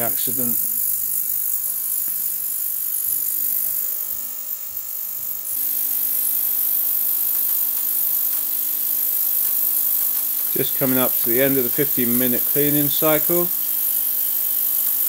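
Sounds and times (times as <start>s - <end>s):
even hum: 0.0s - 14.2s
ultrasonic cleaning tank hissing: 0.0s - 15.0s.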